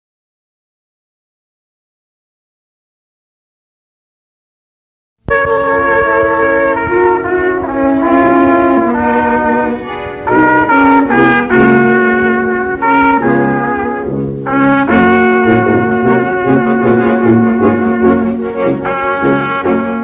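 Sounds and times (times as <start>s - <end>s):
slow brass instrumental music: 5.3s - 20.0s.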